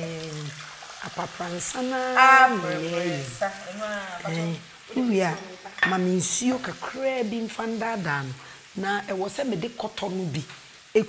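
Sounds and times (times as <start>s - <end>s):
women talking: 0.0s - 10.4s
tomatoes sizzling in oil: 0.0s - 11.0s.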